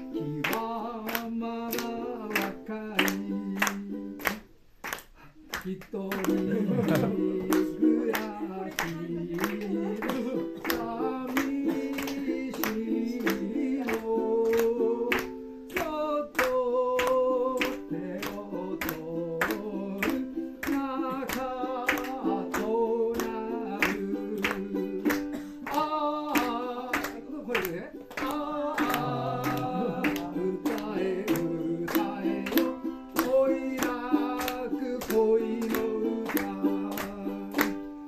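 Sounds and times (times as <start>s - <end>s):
man singing: 0.0s - 4.5s, 5.4s - 38.0s
ukulele strumming: 0.0s - 4.6s, 6.0s - 38.0s
people clapping along: 0.0s - 38.0s.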